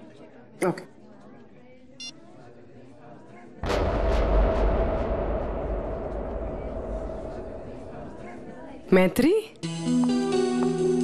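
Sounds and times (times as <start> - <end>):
loud boom with low rumble: 3.6 - 9.2.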